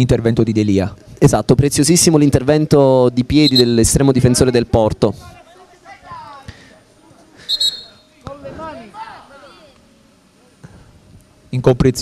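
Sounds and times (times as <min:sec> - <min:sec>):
referee's whistle blast: 0:03.4 - 0:03.8, 0:07.4 - 0:08.0.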